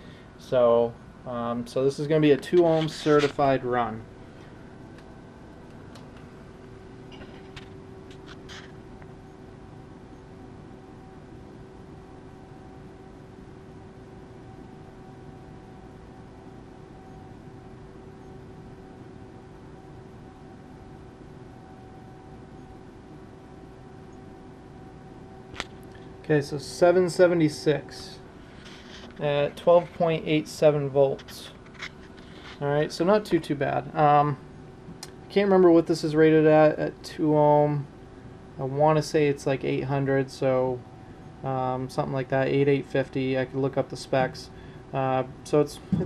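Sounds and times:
fan-like hiss: 0.0s - 9.8s, 24.9s - 46.0s
electrical hum with whine: 0.0s - 46.0s.

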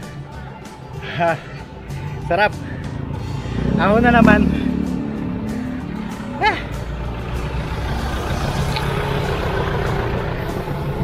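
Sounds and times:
bicycle road noise: 1.0s - 11.0s
person shouting: 6.4s - 6.8s.

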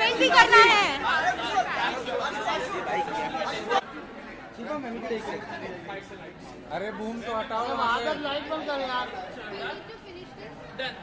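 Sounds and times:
background chatter: 0.0s - 11.0s
people talking over one another: 0.0s - 11.0s.

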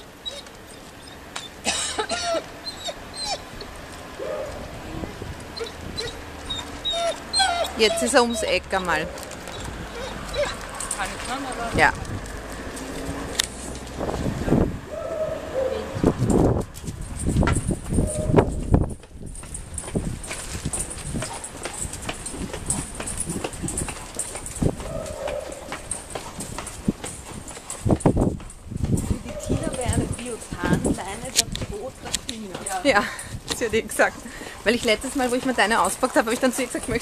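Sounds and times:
hurried footsteps on pavement: 0.0s - 37.0s.

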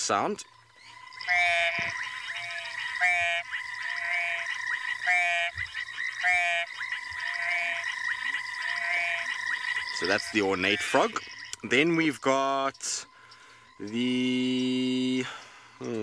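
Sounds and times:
frog calls through phone speaker: 0.0s - 16.0s
steady background drone: 0.0s - 16.0s.

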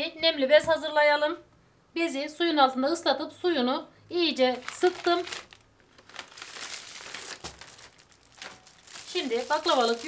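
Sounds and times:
plastic packaging crinkling: 4.4s - 10.0s.

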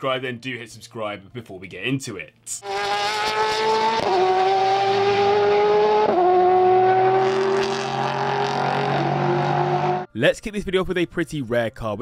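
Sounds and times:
car engine accelerating: 2.6s - 10.1s.

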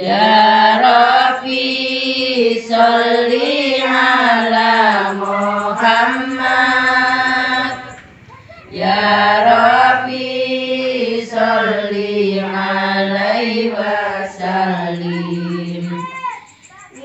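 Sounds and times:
women and girls singing in unison: 0.0s - 16.6s.

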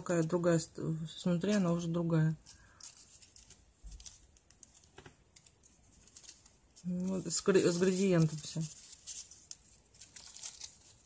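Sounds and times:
foil strips crinkling: 1.4s - 11.0s.

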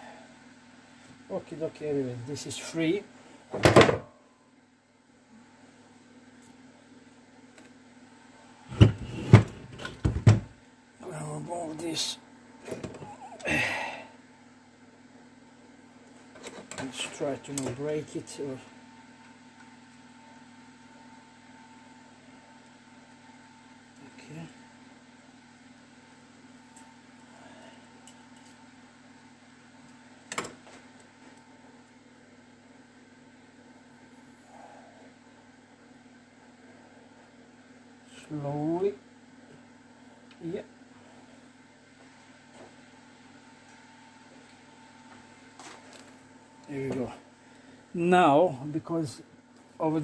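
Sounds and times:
low workshop hum: 0.0s - 50.0s.

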